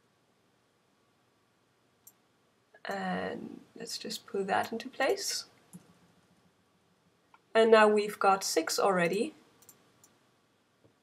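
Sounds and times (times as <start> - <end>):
computer mouse click: 9.0 - 10.2.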